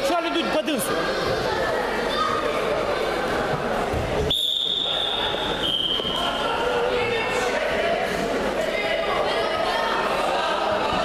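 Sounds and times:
crowd chatter: 0:00.0 - 0:11.0
referee's whistle blast: 0:04.3 - 0:06.3.

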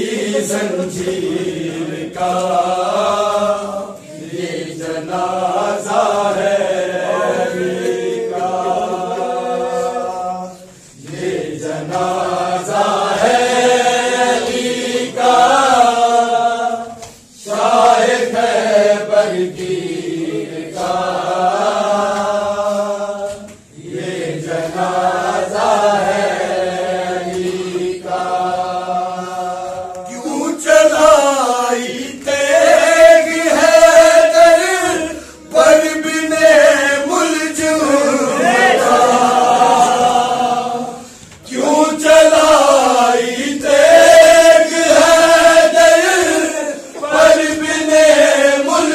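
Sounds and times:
men chanting a lament: 0:00.0 - 0:48.9.

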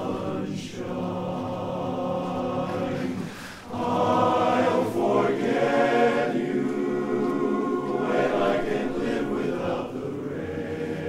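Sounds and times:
male chorus singing a cappella: 0:00.0 - 0:11.0.

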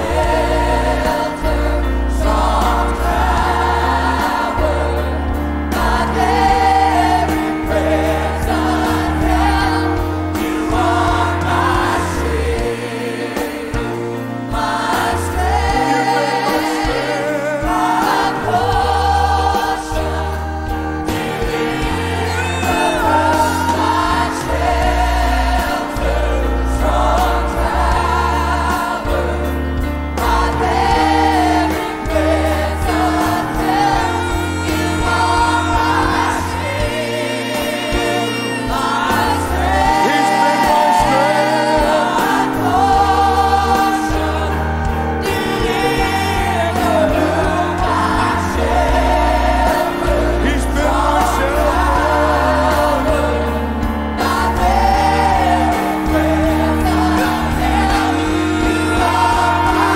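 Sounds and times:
backing singers: 0:00.0 - 0:59.9
bass guitar line: 0:00.0 - 0:59.9
keyboard: 0:00.0 - 0:59.9
man singing lead: 0:15.2 - 0:20.2, 0:21.1 - 0:27.7, 0:30.6 - 0:44.5, 0:45.1 - 0:53.6.

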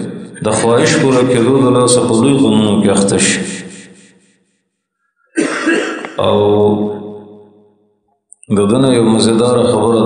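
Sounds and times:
man clearing his throat: 0:05.4 - 0:06.3.

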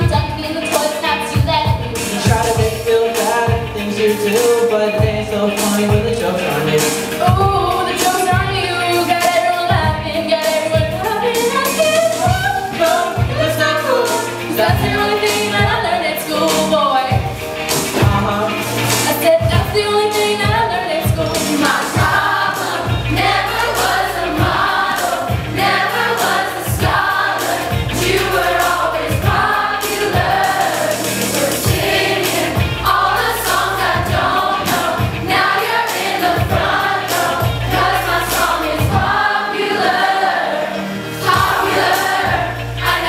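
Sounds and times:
pop backing track: 0:00.0 - 0:43.0
group singing: 0:01.8 - 0:43.0.

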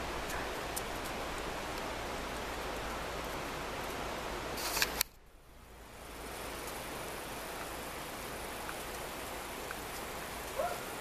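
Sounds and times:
camera high hiss: 0:00.0 - 0:11.0
outdoor background noise: 0:00.0 - 0:11.0
camera clicks: 0:04.6 - 0:05.1.

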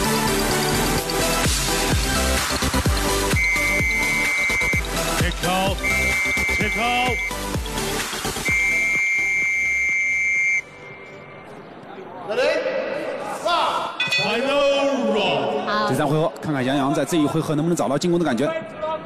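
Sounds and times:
electronic music with heavy bass: 0:00.0 - 0:10.3.

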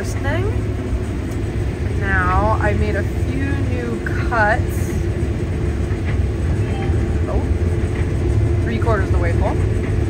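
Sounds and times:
combine harvester engine rumble: 0:00.0 - 0:10.0
steady hum: 0:00.0 - 0:10.0.

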